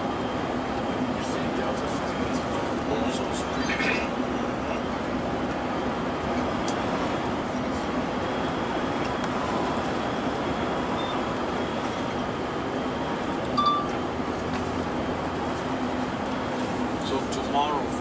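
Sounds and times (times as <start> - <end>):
vehicle engine and tyre noise: 0.0 - 18.0.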